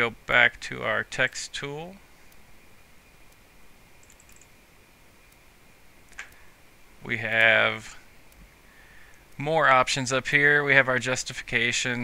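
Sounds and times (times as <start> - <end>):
faint high hum: 0.0 - 12.0
computer mouse clicks: 4.0 - 4.6, 6.1 - 6.5.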